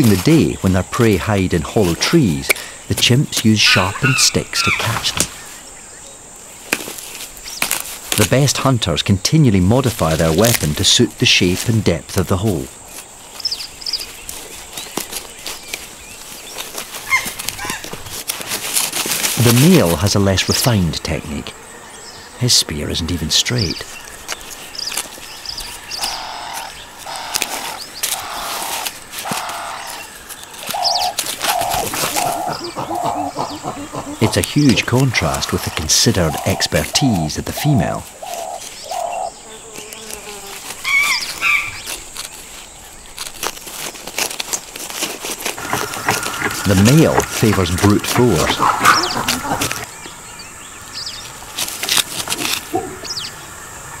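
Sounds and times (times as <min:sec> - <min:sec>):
birds calling: 0:00.0 - 0:54.0
insects buzzing: 0:00.0 - 0:54.0
bird chirps: 0:23.1 - 0:40.0, 0:45.6 - 0:51.4, 0:52.7 - 0:54.0.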